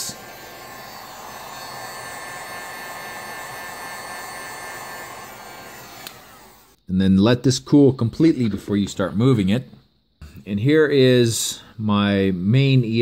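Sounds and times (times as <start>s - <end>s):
heat gun fan blowing: 0.0s - 6.8s.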